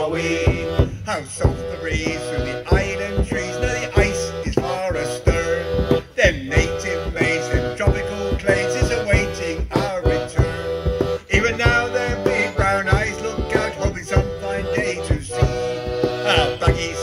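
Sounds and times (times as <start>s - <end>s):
accordion: 0.0s - 17.0s
frame drum beaten with a stick: 0.0s - 17.0s
men singing a sea shanty: 0.0s - 17.0s.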